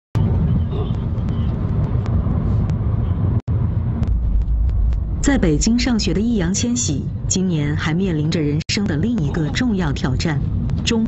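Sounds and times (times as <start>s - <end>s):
car road and engine rumble: 0.2s - 11.0s.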